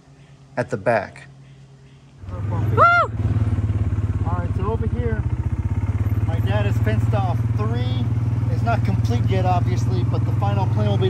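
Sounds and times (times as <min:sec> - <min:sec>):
off-road vehicle engine running: 0:02.2 - 0:11.0.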